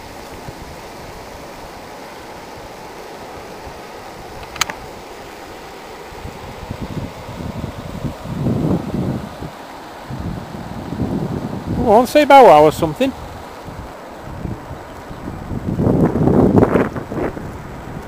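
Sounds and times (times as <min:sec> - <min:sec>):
water rushing over a weir: 0:00.0 - 0:18.0
wind: 0:00.0 - 0:18.0
wind buffeting the microphone: 0:02.4 - 0:18.0
sharp click: 0:04.4 - 0:04.8.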